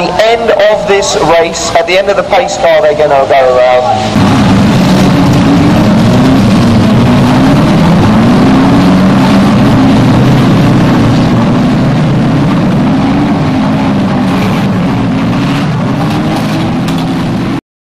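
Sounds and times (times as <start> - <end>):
car engine running: 0.0 - 17.6.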